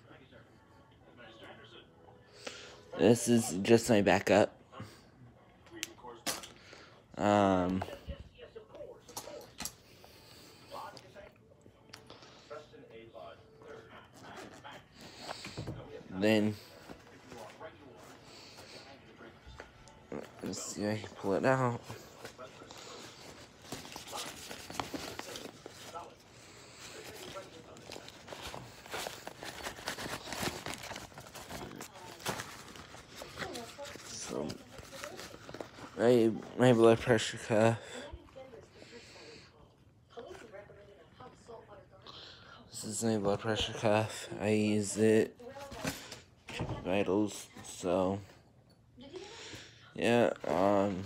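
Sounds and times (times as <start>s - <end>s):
packaging rustling: 19.6s - 36.6s.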